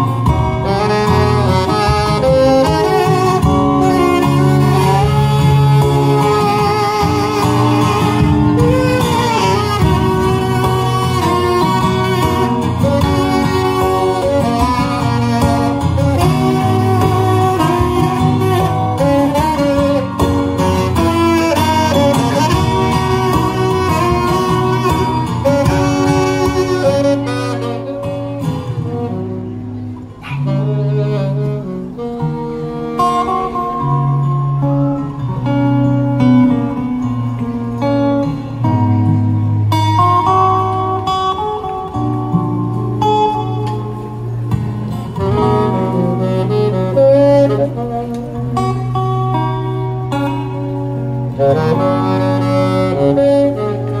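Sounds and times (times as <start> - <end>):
acoustic guitar accompaniment: 0.0 - 54.0
alto saxophone slow melody: 0.0 - 54.0.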